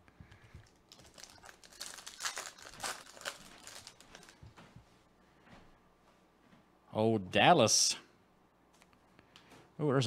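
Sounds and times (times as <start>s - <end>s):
foil wrapper crinkling: 0.6s - 4.6s.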